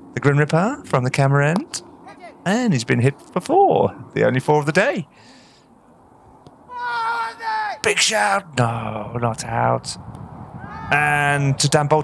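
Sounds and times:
fielders shouting an appeal: 2.0 - 2.8, 6.7 - 9.9.

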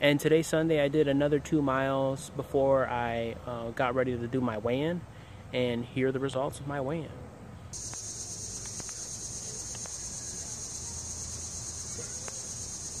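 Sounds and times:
insect chorus drone: 7.8 - 13.0.

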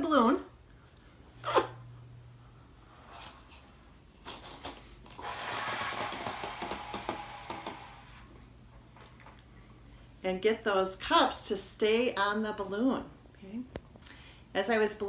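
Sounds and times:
person blowing up balloon: 1.4 - 1.8, 5.2 - 8.4.

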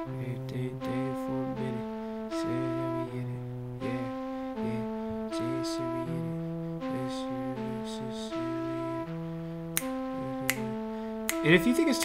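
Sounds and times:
synthesized flute melody: 0.0 - 12.0.

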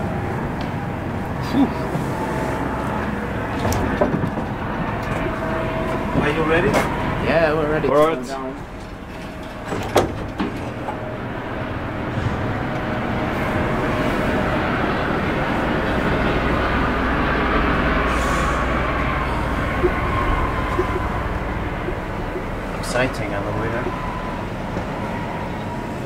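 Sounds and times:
freight elevator rumble and whirr: 0.0 - 26.0.

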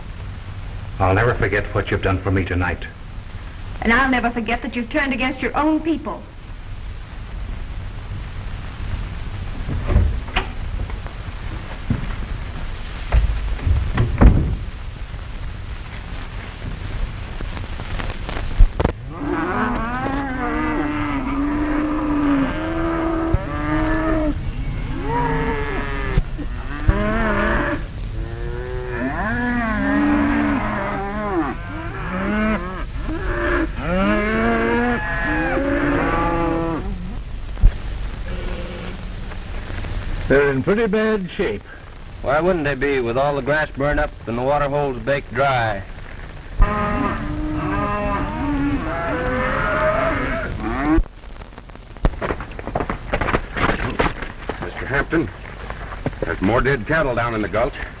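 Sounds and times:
dull thumps: 9.6 - 14.8
cattle mooing: 19.0 - 37.0, 46.6 - 51.0.

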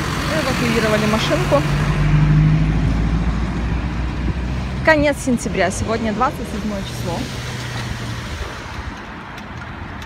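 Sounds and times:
car passing by: 0.0 - 9.2.

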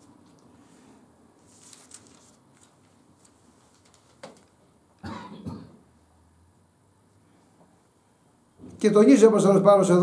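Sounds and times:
man coughing: 5.0 - 5.8.

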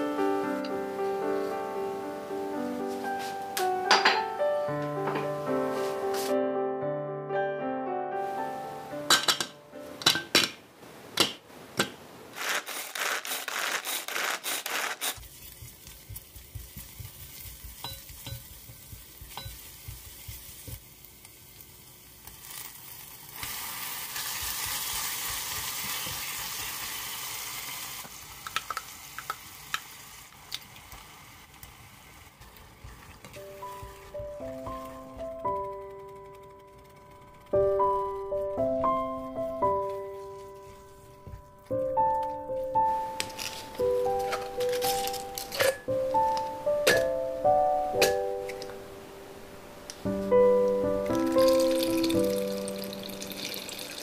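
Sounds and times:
food sizzling in hot oil: 15.1 - 35.2, 50.0 - 54.0
spatula stirring and tapping pot: 15.2 - 20.9, 32.4 - 37.1.

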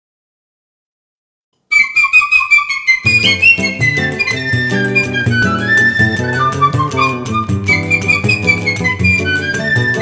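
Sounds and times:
solo piccolo melody: 1.7 - 10.0.

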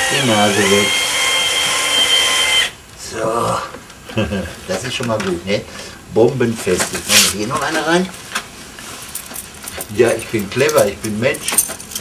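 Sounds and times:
cordless drill motor whine: 0.0 - 2.8.

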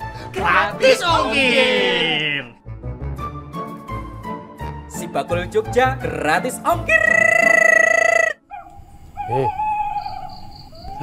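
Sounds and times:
man exclaiming: 0.4 - 2.6, 6.8 - 8.4.

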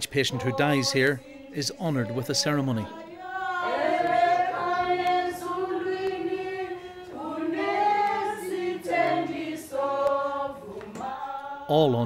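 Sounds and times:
group singing unaccompanied: 0.0 - 12.0.

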